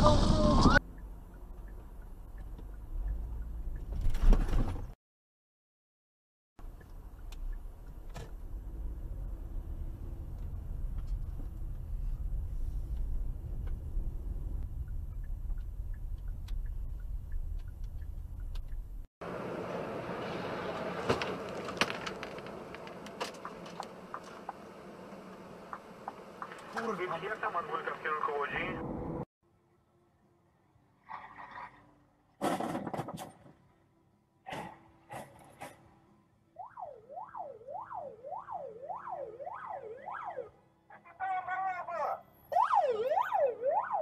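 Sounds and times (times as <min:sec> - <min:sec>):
car road and engine rumble: 0:00.0 - 0:05.0, 0:06.6 - 0:29.3.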